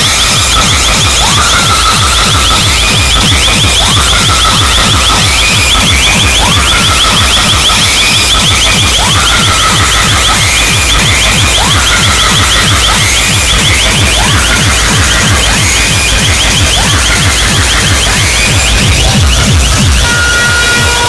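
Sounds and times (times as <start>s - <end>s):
distorted dance music: 0.0s - 21.0s
rapid high ticking: 0.0s - 21.0s
siren-like rising tone: 0.0s - 21.0s.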